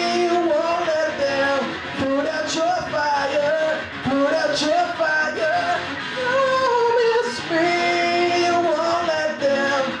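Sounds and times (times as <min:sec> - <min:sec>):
loop pedal backing: 0:00.0 - 0:10.0
rock electric guitar: 0:00.0 - 0:10.0.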